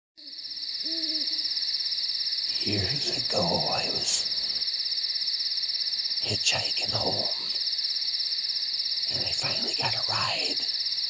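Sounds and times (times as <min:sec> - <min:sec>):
owl hooting: 0:00.2 - 0:04.6
insect trill: 0:00.2 - 0:11.0.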